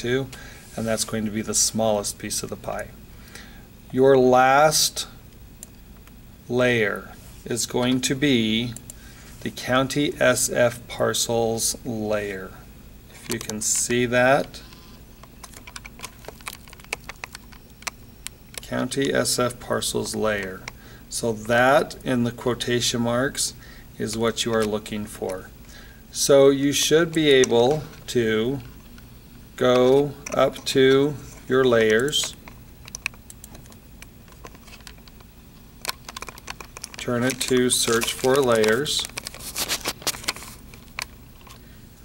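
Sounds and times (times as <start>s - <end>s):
low steady hum: 0.0s - 42.0s
computer keyboard clicking: 15.4s - 18.6s, 32.8s - 33.8s, 35.8s - 39.3s.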